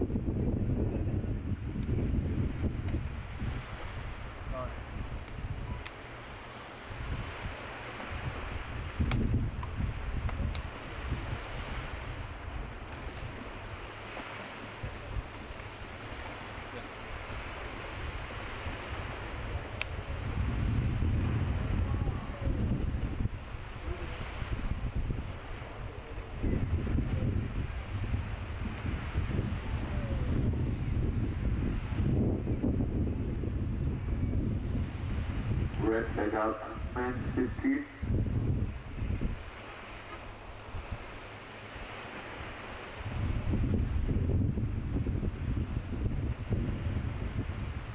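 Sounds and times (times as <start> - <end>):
choppy sea: 0.0 - 47.9
wind buffeting microphone: 0.0 - 47.9.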